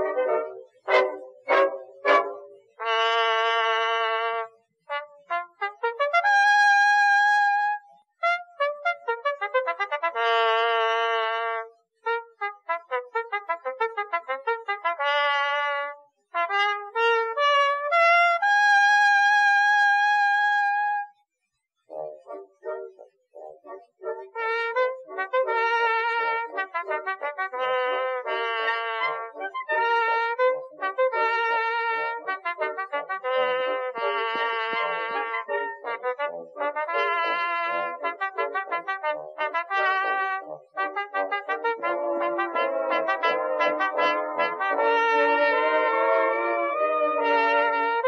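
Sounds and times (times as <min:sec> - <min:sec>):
solo trumpet melody: 0:00.0 - 0:21.2, 0:21.9 - 0:48.0.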